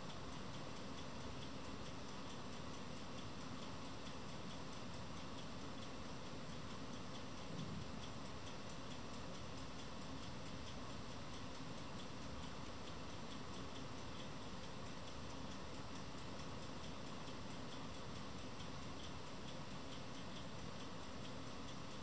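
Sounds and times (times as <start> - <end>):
faint room hiss: 0.0 - 22.0
soft high-pitched ticking: 0.0 - 22.0.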